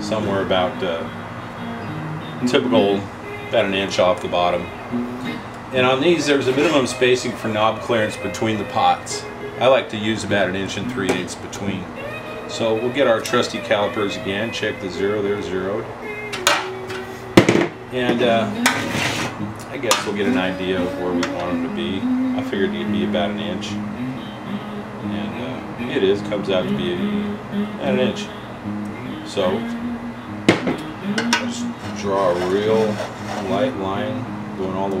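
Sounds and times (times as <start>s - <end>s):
sharp metallic knock: 30.5s - 31.5s.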